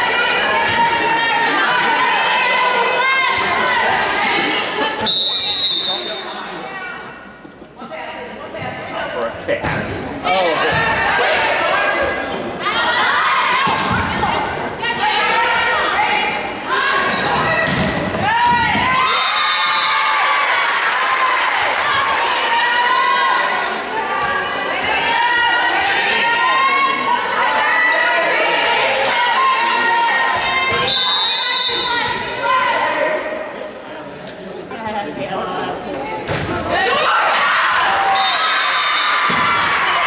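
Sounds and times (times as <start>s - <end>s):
crowd shouting and cheering: 0.0s - 7.3s, 9.2s - 33.8s, 36.2s - 40.0s.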